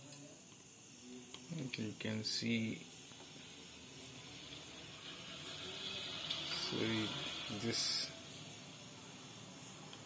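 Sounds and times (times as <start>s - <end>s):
faint steady background hiss: 0.0s - 10.0s
high hiss: 0.8s - 10.0s.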